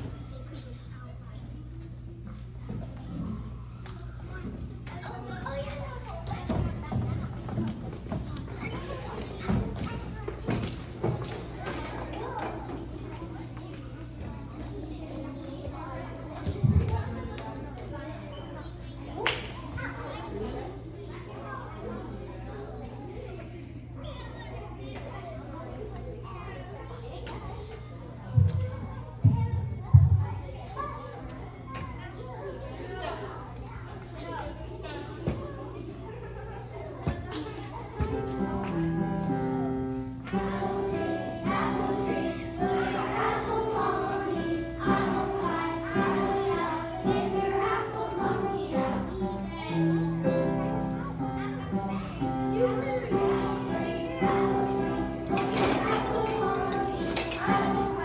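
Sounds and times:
children's voices echoing: 0:02.5 - 0:58.0.

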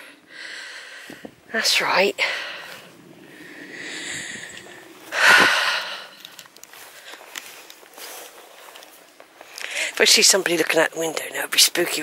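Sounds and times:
footsteps on dry grass: 0:01.0 - 0:11.1.

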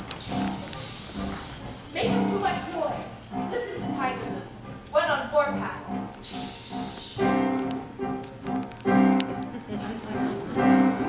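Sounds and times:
instrumental accompaniment: 0:00.0 - 0:11.0
high sliding vocal calls: 0:06.2 - 0:07.2.

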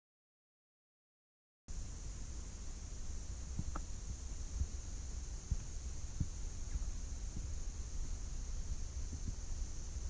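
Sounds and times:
low rumble on microphone: 0:01.7 - 0:10.0
steady high hiss: 0:01.7 - 0:10.0.

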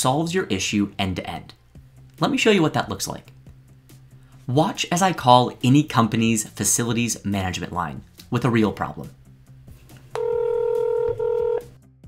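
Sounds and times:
telephone ringback tone: 0:10.2 - 0:11.7.

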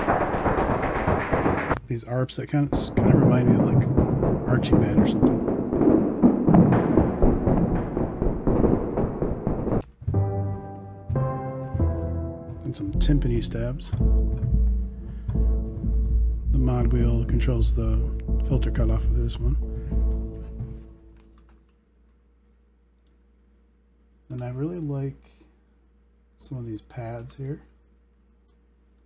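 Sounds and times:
synth timpani stabs: 0:00.0 - 0:01.8, 0:02.4 - 0:21.4
lo-fi marching drum sequence: 0:00.0 - 0:21.4.

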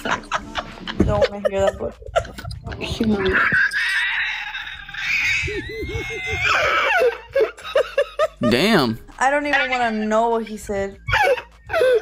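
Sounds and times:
high-pitched shrieking laughter: 0:02.1 - 0:08.4.

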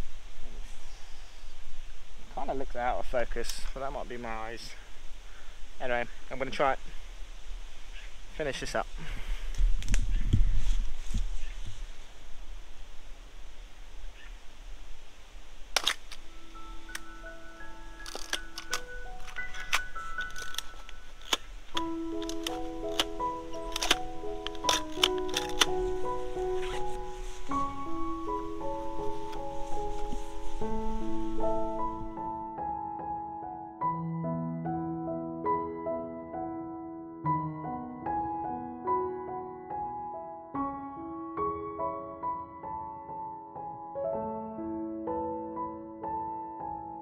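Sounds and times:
gentle piano-like music: 0:00.0 - 0:04.8, 0:15.8 - 0:47.0
wind rumble on microphone: 0:06.8 - 0:15.7
camera mechanical clicks: 0:15.8 - 0:16.2, 0:18.0 - 0:25.9.

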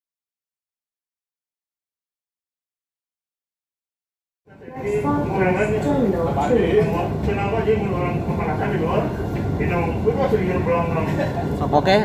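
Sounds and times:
steady low running noise: 0:04.5 - 0:12.0
voices talking: 0:04.5 - 0:12.0.

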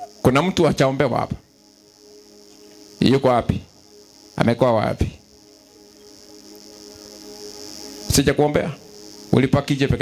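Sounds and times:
faint sustained musical chord: 0:00.0 - 0:10.0
high-pitched hiss: 0:00.0 - 0:10.0.

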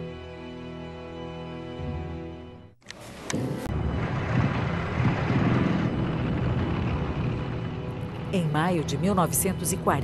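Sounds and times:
military vehicle engines running: 0:03.8 - 0:10.0.

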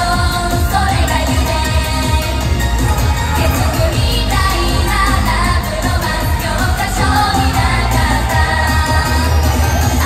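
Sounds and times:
loud pop music with heavy bass: 0:00.0 - 0:10.0
women singing: 0:00.0 - 0:10.0.

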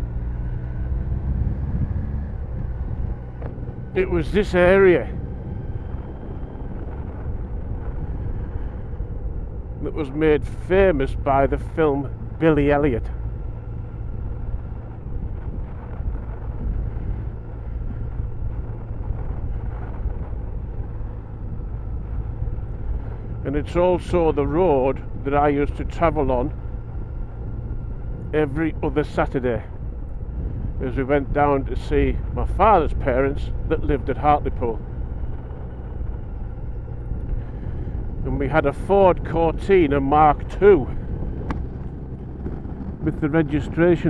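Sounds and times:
motorcycle engine running: 0:00.0 - 0:44.0
road rumble: 0:00.0 - 0:44.0
wind: 0:00.0 - 0:44.0.

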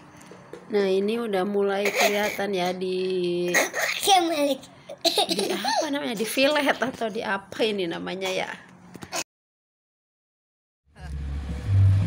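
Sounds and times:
music with bass rumble over loudspeaker: 0:11.0 - 0:12.0.

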